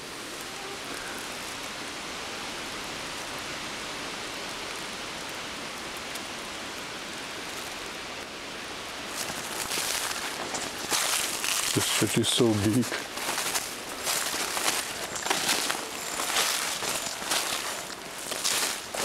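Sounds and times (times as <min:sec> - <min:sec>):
wind through tree leaves: 0:00.0 - 0:19.0
footsteps through dry undergrowth: 0:09.0 - 0:19.0.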